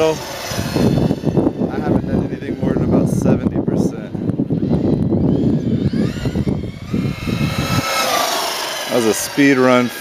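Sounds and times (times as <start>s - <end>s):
rc car motor whine: 0.0s - 10.0s.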